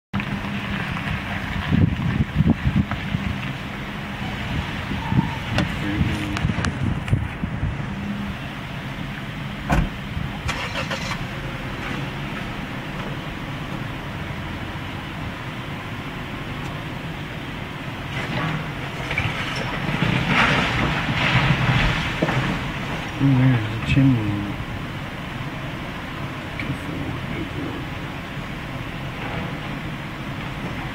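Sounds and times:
excavator diesel engine running: 0.2s - 30.9s
breaking timber knocks and cracks: 18.1s - 23.2s
wall and debris collapsing: 18.1s - 23.2s.

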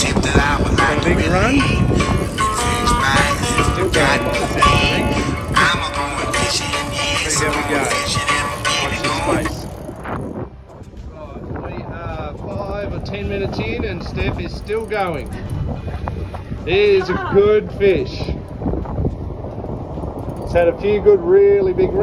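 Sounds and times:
song with singing voice: 0.0s - 9.7s.

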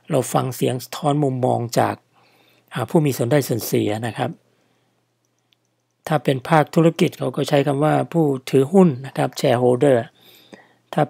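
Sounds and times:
man speaking: 0.0s - 2.0s, 2.7s - 4.4s, 6.0s - 10.2s.

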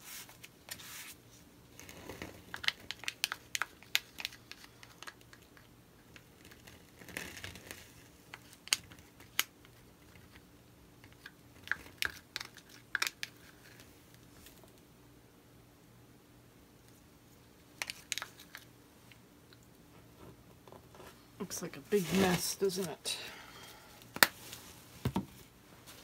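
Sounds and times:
plastic cup crinkling and clicking: 2.1s - 13.9s, 17.8s - 18.7s.

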